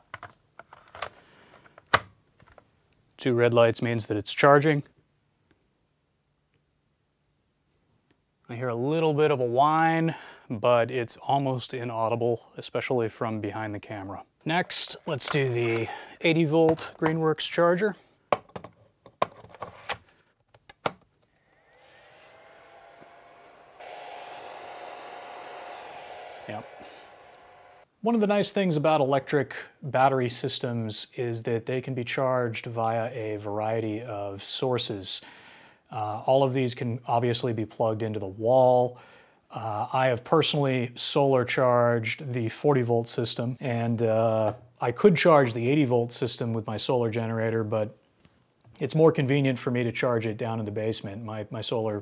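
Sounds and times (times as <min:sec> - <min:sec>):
plastic clicks and knocks: 0:00.0 - 0:02.6, 0:18.3 - 0:21.1
charger cooling fan whirring: 0:21.7 - 0:27.8.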